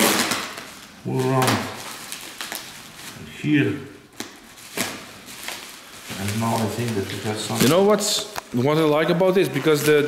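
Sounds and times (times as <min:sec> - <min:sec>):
tape pulled: 0:00.0 - 0:02.8
bubble wrap crackling: 0:00.0 - 0:10.0.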